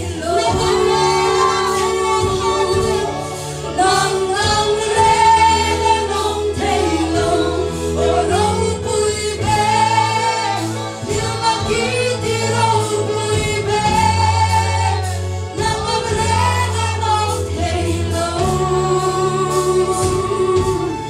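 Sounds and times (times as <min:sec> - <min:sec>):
drums: 0:00.0 - 0:21.0
keyboard: 0:00.0 - 0:21.0
women singing gospel song: 0:00.0 - 0:21.0.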